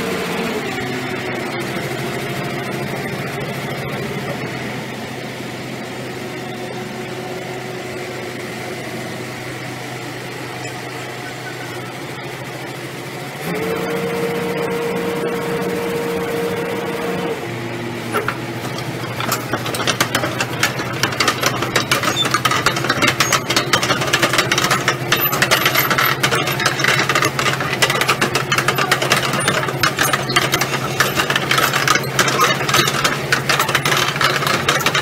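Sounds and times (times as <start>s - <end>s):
diesel machinery engines humming: 0.0s - 35.0s
rapid clatter of knocks: 18.2s - 35.0s.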